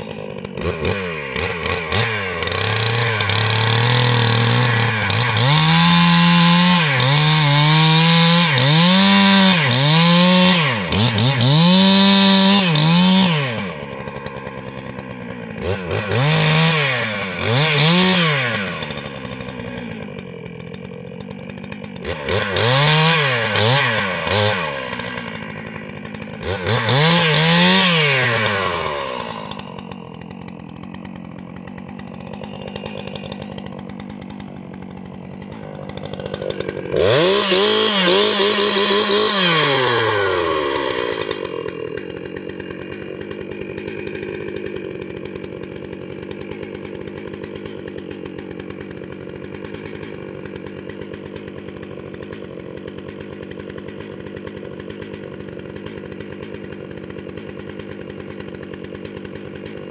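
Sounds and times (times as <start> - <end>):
chainsaw idling and revving: 0.0 - 59.9.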